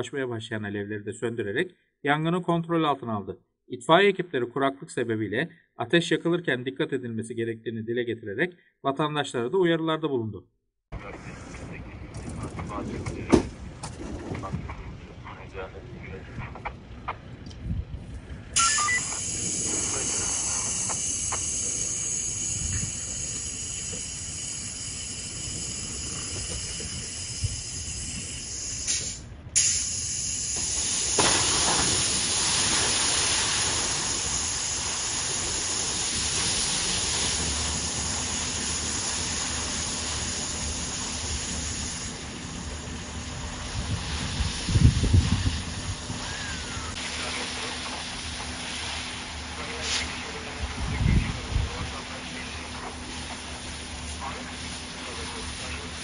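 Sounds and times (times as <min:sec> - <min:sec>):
fire hose spraying water: 0:18.6 - 0:56.0
grass fire burning: 0:31.0 - 0:42.1.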